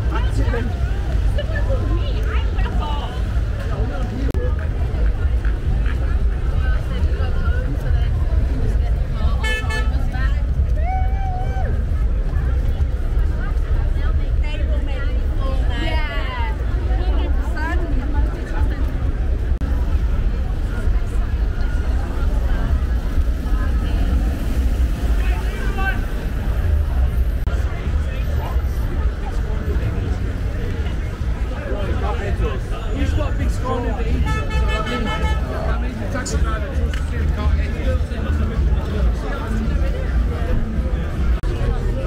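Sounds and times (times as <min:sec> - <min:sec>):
people calling out and chatting: 0:00.0 - 0:42.0
street traffic rumble: 0:00.0 - 0:42.0
vehicle horn: 0:09.4 - 0:10.1, 0:34.1 - 0:35.6.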